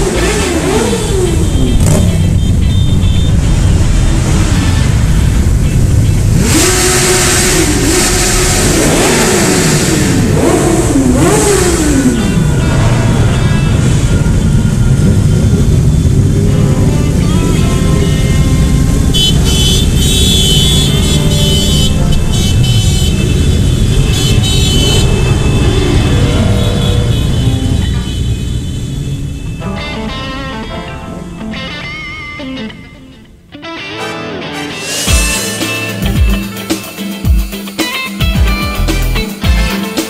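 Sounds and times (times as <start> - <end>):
motorcycle engines revving: 0.0 - 29.6.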